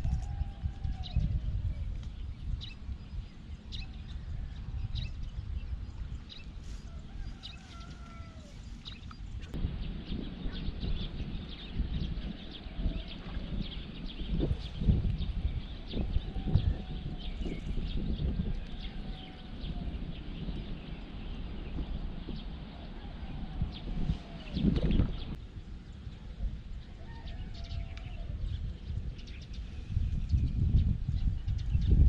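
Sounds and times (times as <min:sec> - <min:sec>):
wind gusting on microphone: 0:00.0 - 0:32.0.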